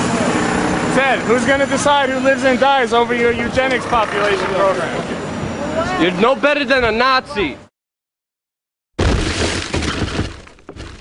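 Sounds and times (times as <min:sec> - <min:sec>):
debris clattering: 0:09.0 - 0:11.0
loud shattering crash: 0:09.0 - 0:11.0.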